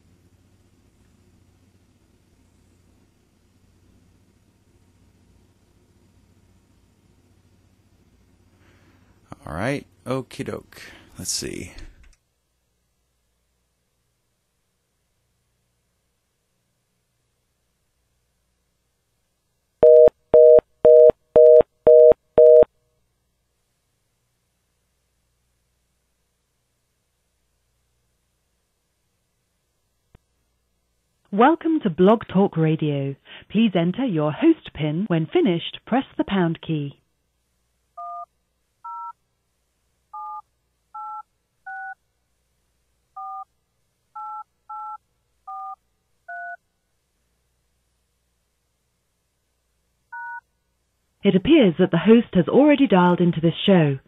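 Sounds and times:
telephone fast busy signal: 19.8s - 22.7s
telephone keypad touch tones: 19.8s - 22.7s, 40.1s - 40.4s, 41.0s - 42.0s, 43.2s - 43.4s, 44.2s - 46.6s, 50.1s - 50.4s.

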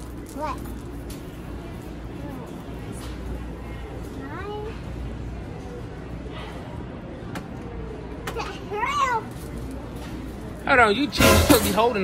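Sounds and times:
store background noise: 0.0s - 12.0s.

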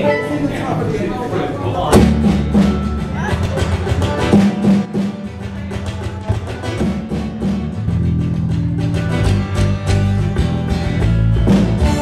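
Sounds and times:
bass guitar: 1.7s - 12.0s
electric guitar: 2.0s - 12.0s.

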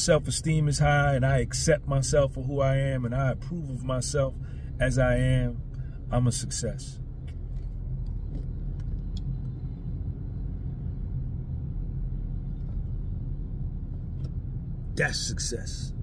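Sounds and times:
road and engine rumble in car: 0.0s - 16.0s.

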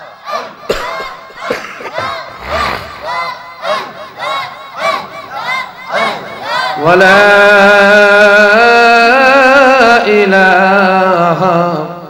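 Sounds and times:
many voices chanting in unison: 0.0s - 12.0s.

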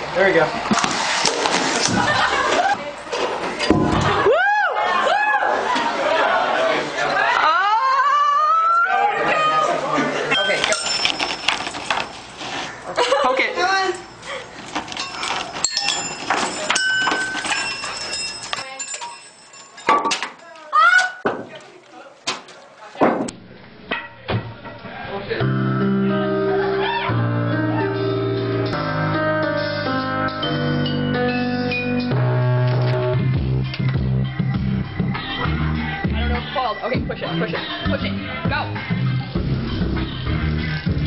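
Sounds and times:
short metallic rings: 10.4s - 12.3s, 14.9s - 20.5s
machine parts clattering: 10.4s - 12.4s, 14.0s - 20.6s
bass line: 23.3s - 41.0s
guitar: 23.4s - 41.0s.

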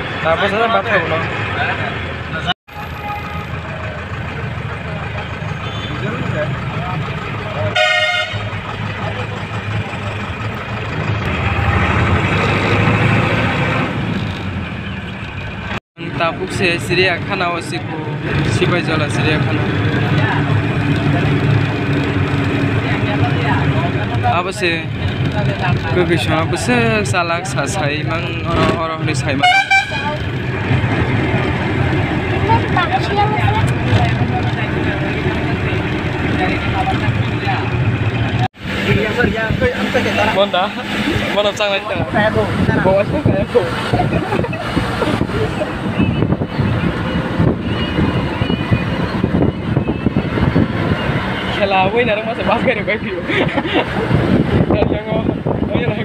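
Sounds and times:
bus engine droning: 0.0s - 56.0s
road noise: 0.0s - 56.0s.

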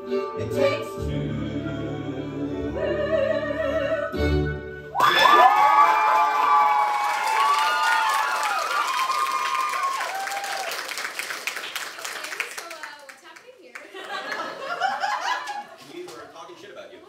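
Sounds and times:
audience whooping and calling: 5.0s - 11.2s
audience clapping: 5.0s - 16.3s.

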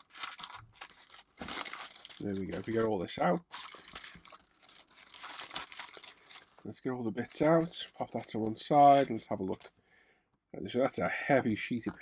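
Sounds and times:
plastic packaging crinkling: 0.0s - 9.7s.

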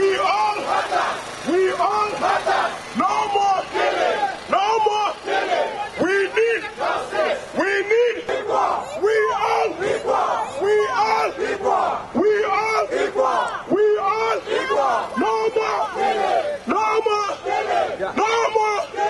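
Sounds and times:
man shouting through amplifier: 0.0s - 0.7s, 1.5s - 2.2s, 3.0s - 5.2s, 5.8s - 6.8s, 7.6s - 11.4s, 12.1s - 19.0s
crowd shouting a chant: 0.0s - 19.0s.

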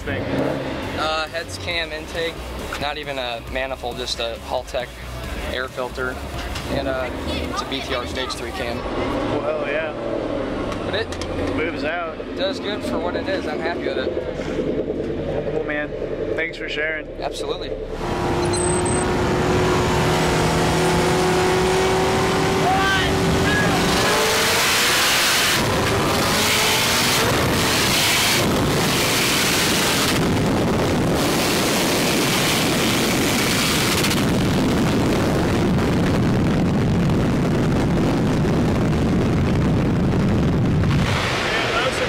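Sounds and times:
car engines revving: 0.0s - 42.0s
wind rush: 19.1s - 42.0s.

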